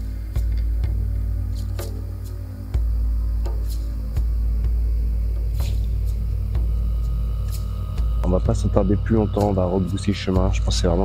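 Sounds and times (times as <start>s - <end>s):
deep rumble: 0.0s - 11.0s
low droning music: 0.0s - 11.0s.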